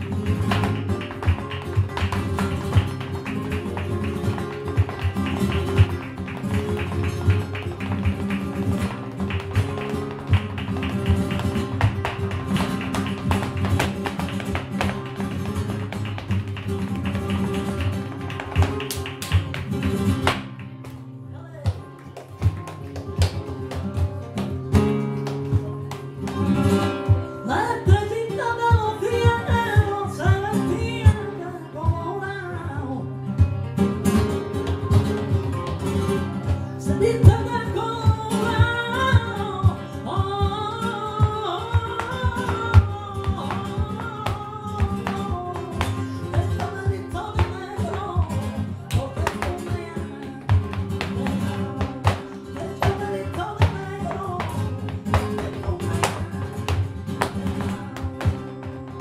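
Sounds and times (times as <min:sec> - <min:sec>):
flamenco guitars: 0:00.0 - 0:59.0
footwork on wooden stage: 0:00.0 - 0:59.0
woman singing: 0:27.0 - 0:33.2, 0:36.4 - 0:59.0.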